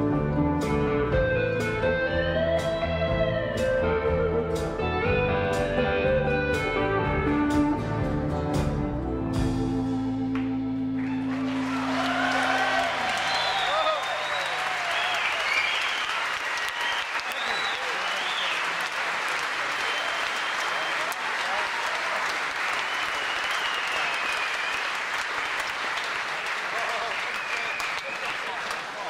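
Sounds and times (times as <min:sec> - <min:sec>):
audience clapping and cheering: 0:10.3 - 0:29.0
high whistles: 0:13.0 - 0:18.8, 0:19.8 - 0:21.2, 0:22.8 - 0:25.1, 0:27.3 - 0:28.4.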